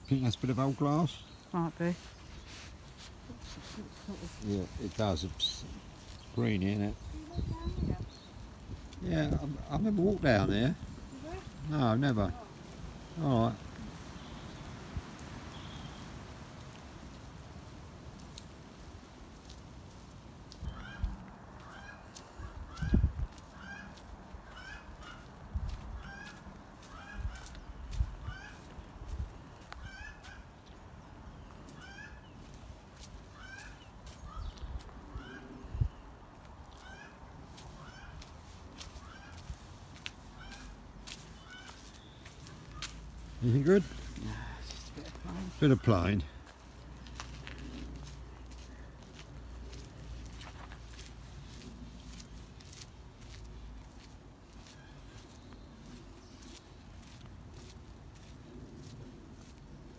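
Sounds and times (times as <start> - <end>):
bird calling: 0.0 - 14.8, 15.4 - 16.2, 20.6 - 25.4, 26.0 - 28.9, 29.5 - 36.1, 36.7 - 52.0, 54.5 - 57.1.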